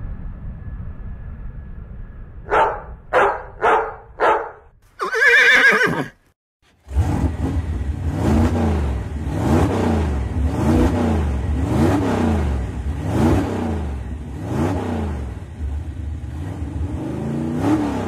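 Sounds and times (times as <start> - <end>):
low motor-like drone swooping: 0.0 - 3.1.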